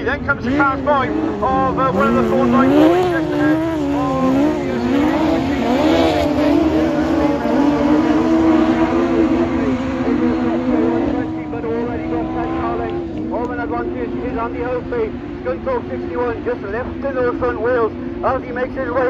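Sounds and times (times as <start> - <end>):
race car engines running hard: 0.0 - 19.0.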